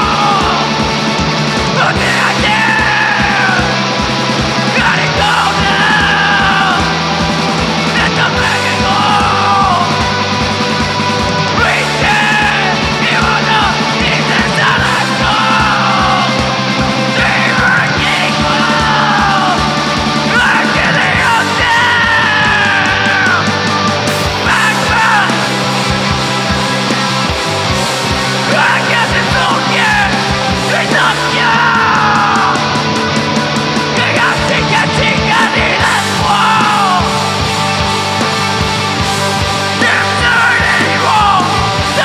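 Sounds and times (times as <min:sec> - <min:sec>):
heavy rock band playing live: 0:00.0 - 0:42.0
person yelling vocals: 0:01.8 - 0:03.8, 0:04.7 - 0:07.0, 0:07.9 - 0:10.0, 0:20.3 - 0:23.5, 0:28.5 - 0:32.7, 0:34.0 - 0:37.2, 0:39.8 - 0:42.0.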